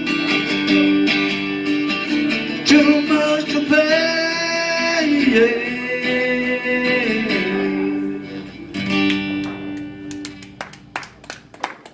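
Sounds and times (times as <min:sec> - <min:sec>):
scattered hand claps: 0:08.9 - 0:11.9.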